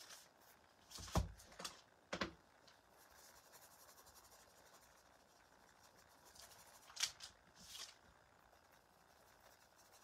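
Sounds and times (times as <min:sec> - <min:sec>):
paintbrush scratching: 0:02.7 - 0:10.0.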